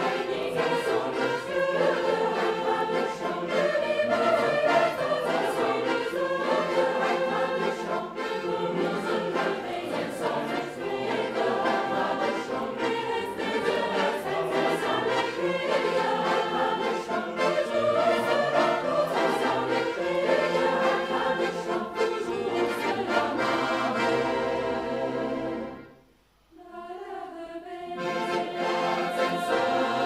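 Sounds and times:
large choir singing: 0:00.0 - 0:25.9, 0:26.6 - 0:30.0.

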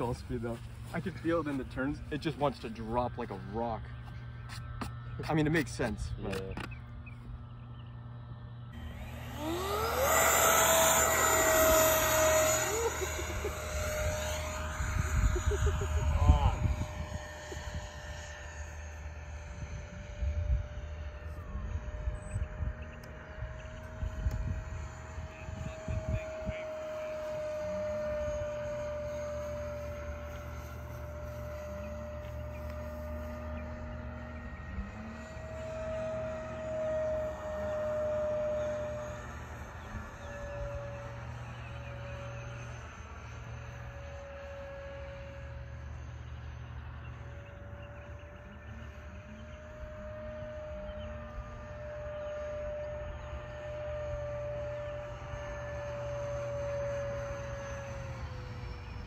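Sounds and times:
electric ducted fan whine: 0:00.0 - 0:59.0.

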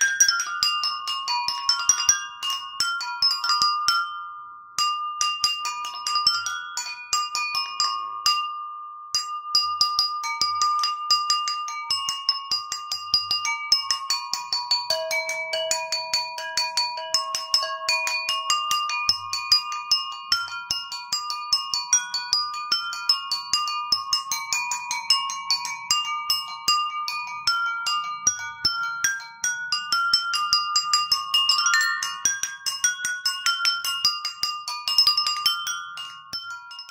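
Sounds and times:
struck water-tuned bowls ringing: 0:00.0 - 0:36.9.

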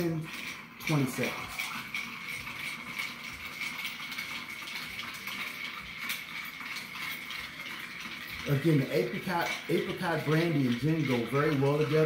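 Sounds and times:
ice cubes clinking in a glass: 0:00.0 - 0:12.0.

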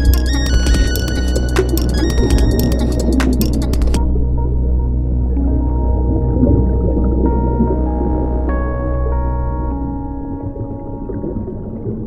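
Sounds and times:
slow ambient music with drone: 0:00.0 - 0:12.0.

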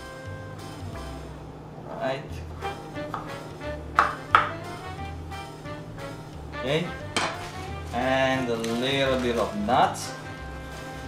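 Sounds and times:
background music: 0:00.0 - 0:11.0
knife chopping on wooden board: 0:03.0 - 0:03.4, 0:04.0 - 0:04.6.

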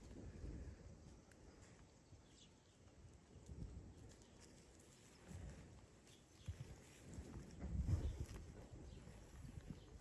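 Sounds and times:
hooves stepping on dry grass: 0:03.4 - 0:10.0.

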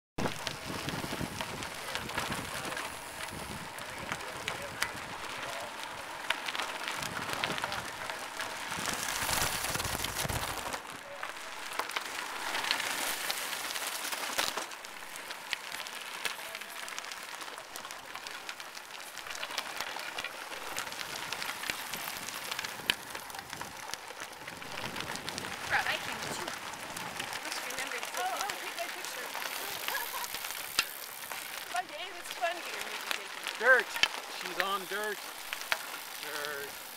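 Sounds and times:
wind rumbling on microphone: 0:00.2 - 0:05.9, 0:06.8 - 0:10.8, 0:21.0 - 0:28.4
bicycle tyres crackling on gravel: 0:00.2 - 0:36.9.

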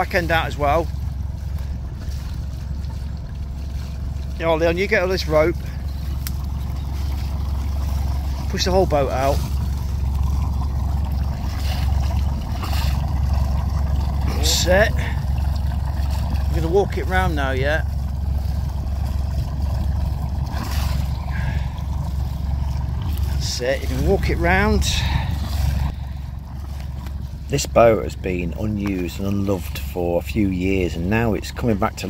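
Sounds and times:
diesel engine idling: 0:00.0 - 0:32.0.

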